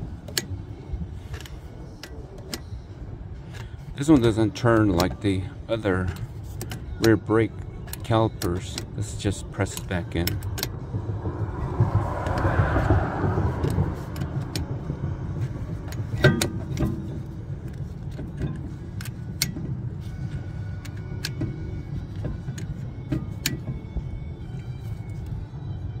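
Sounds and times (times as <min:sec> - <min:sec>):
metal clanks: 0:01.2 - 0:25.3
low rumble: 0:08.7 - 0:26.0.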